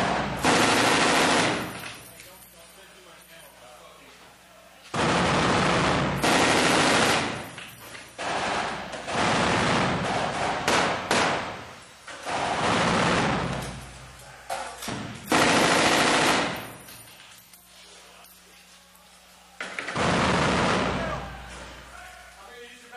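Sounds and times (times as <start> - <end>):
machine gun bursts: 0.0 - 2.0, 4.9 - 11.6, 12.2 - 13.7, 14.9 - 16.9, 19.7 - 21.3.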